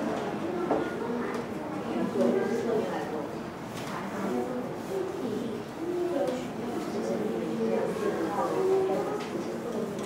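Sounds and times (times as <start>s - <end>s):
children chattering: 0.0s - 10.0s.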